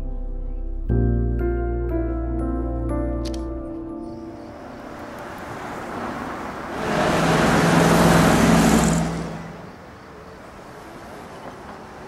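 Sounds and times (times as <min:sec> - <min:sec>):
motor vehicle passing: 0:04.2 - 0:12.0.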